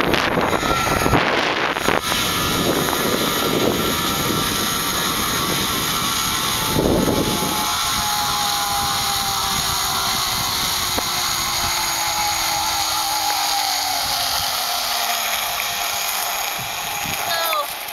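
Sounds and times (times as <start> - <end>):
wind rushing past microphone: 0.0 - 13.2
zip-line pulleys whining on cable: 0.0 - 17.9.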